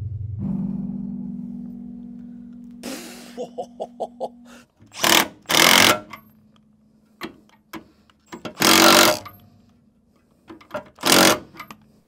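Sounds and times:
socket wrench rattling: 4.9s - 6.3s, 10.5s - 11.8s.

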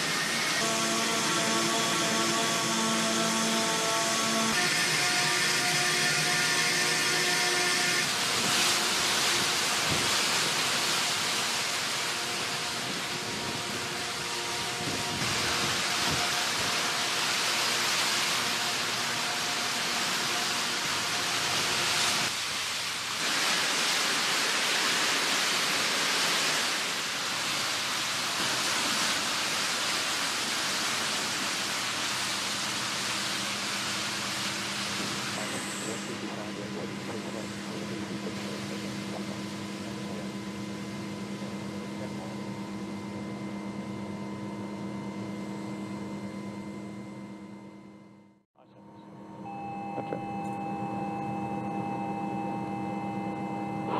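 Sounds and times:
machinery rushing hiss: 0.0s - 42.6s.

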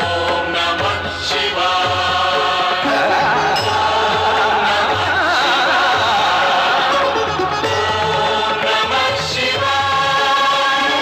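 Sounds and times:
choir singing long held notes: 0.0s - 11.0s.

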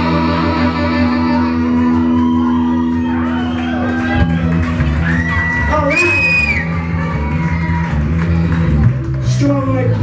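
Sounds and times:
bass guitar: 0.0s - 10.0s
electric guitar: 0.0s - 10.0s.

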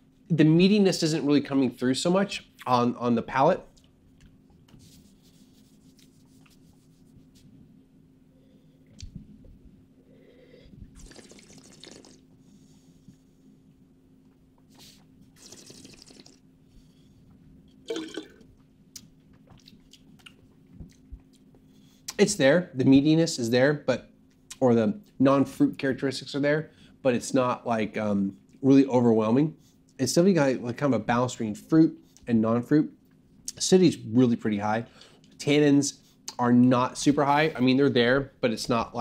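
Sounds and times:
steady low hum: 0.0s - 39.0s
breathy slurps: 10.9s - 12.2s, 15.4s - 16.4s
wet mouth sounds: 10.9s - 12.3s, 15.4s - 16.4s.

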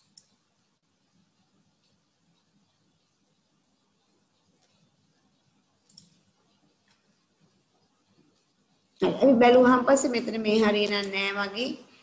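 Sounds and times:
computer mouse clicks: 0.0s - 8.5s.

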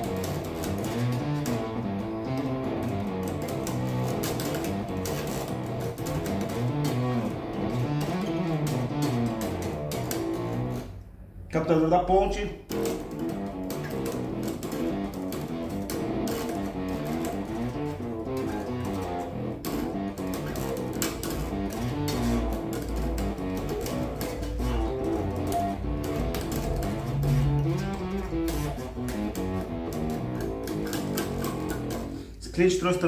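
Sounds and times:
distorted electric bass notes: 0.0s - 33.0s.

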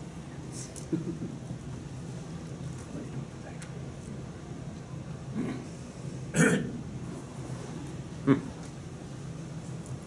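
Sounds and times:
low room hum: 0.0s - 10.0s
person coughing: 6.4s - 6.7s.

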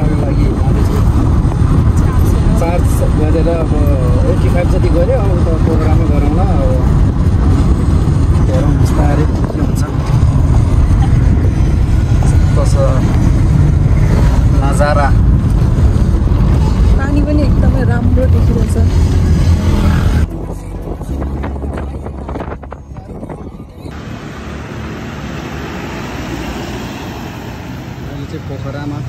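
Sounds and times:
road and tyre rumble in car: 0.0s - 29.0s.

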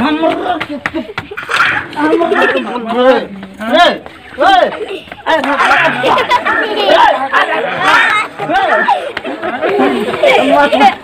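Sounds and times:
man and woman arguing: 0.0s - 11.0s.

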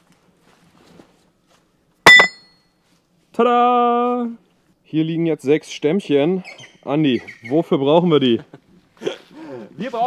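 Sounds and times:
sharp clink with high ringing: 2.1s - 2.6s.

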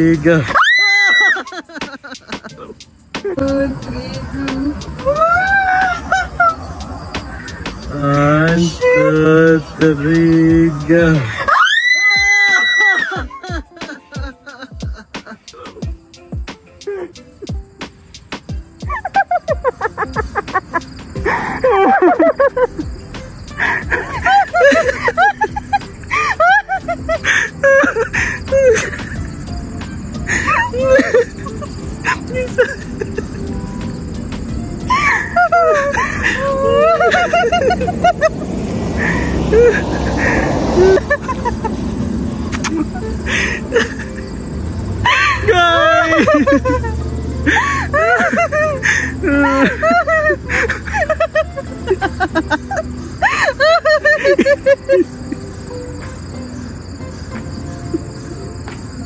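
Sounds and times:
high-pitched excited scream: 0.4s - 1.7s, 5.0s - 6.6s, 11.2s - 13.6s, 34.9s - 37.2s, 45.0s - 46.5s
woman sobbing: 0.5s - 6.7s, 11.2s - 15.9s, 16.8s - 17.6s, 18.9s - 22.8s, 23.5s - 29.4s, 30.2s - 33.4s, 34.9s - 38.2s, 42.6s - 44.3s, 45.0s - 55.4s
hip-hop beat: 1.4s - 11.3s, 13.1s - 21.4s, 22.1s - 26.1s.

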